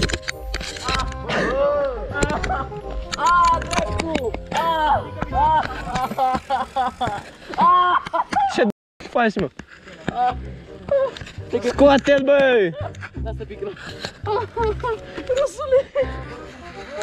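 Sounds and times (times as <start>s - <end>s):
music: 0.0s - 7.0s, 10.0s - 17.0s.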